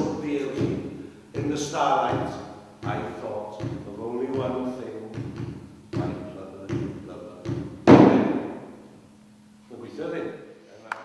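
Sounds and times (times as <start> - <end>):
man reciting poetry rhythmically: 0.0 - 7.7
sharp thumps: 0.0 - 8.9.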